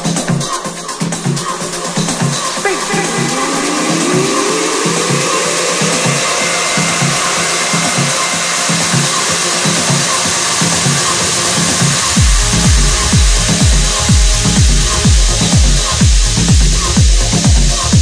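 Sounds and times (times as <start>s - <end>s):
deep kick drum and bass: 0.0s - 18.0s
electronic dance music: 0.0s - 18.0s
noise wash: 0.0s - 18.0s
rising electronic tone: 2.7s - 17.5s.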